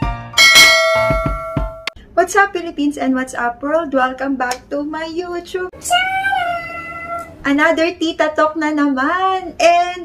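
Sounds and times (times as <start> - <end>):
background music with low beat: 0.0 - 2.0
bell chime: 0.4 - 1.9.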